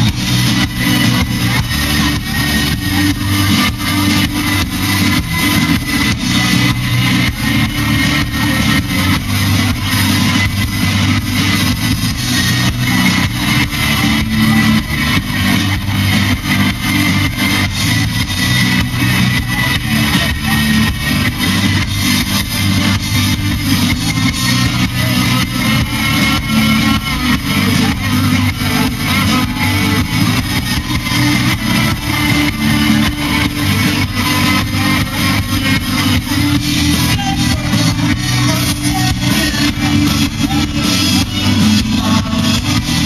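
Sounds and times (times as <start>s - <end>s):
electric guitars: 0.0s - 43.0s
steady drum beat: 0.0s - 43.0s.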